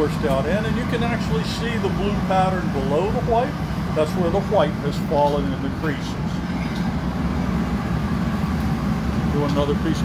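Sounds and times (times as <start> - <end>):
furnaces and blowers roaring: 0.0 - 10.0.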